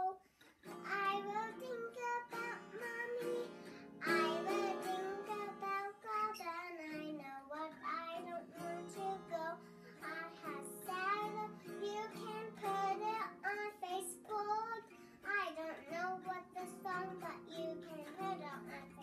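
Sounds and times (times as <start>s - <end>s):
child singing: 0.0s - 19.0s
small guitar strumming: 0.4s - 19.0s.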